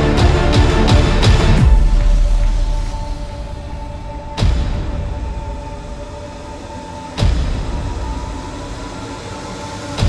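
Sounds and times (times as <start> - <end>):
sustained droning music: 0.0 - 10.0.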